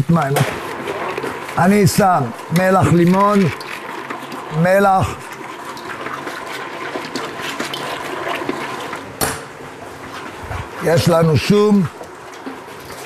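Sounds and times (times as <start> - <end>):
mixer churning thick paste: 0.0 - 13.0.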